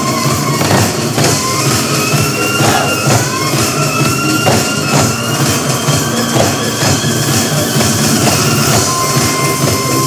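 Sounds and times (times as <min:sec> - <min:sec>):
steady high tone: 0:01.3 - 0:10.0
hand drums beaten: 0:02.5 - 0:03.6, 0:04.3 - 0:05.4, 0:06.3 - 0:07.2.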